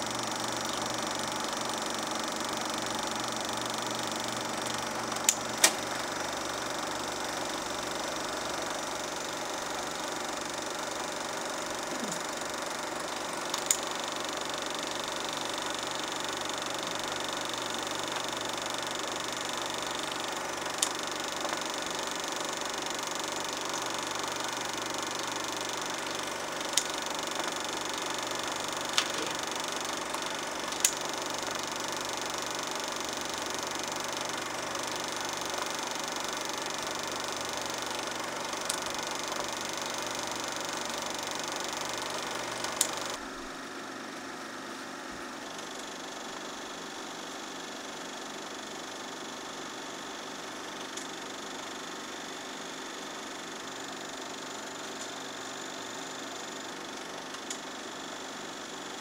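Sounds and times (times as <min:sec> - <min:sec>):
film projectors whirring: 0:00.0 - 0:59.0
sharp clicks: 0:00.3 - 0:43.2.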